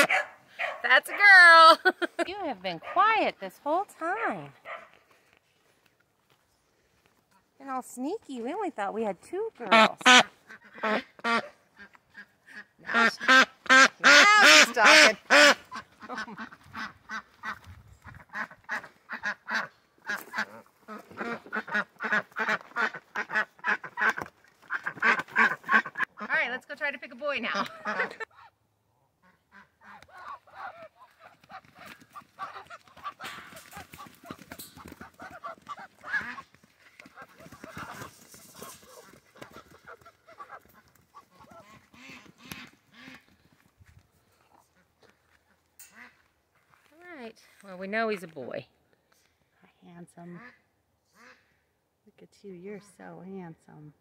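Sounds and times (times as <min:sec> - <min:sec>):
duck quacking loudly: 0:00.0 - 0:00.3, 0:09.6 - 0:26.4, 0:27.4 - 0:28.5, 0:29.2 - 0:34.1, 0:38.6 - 0:43.3.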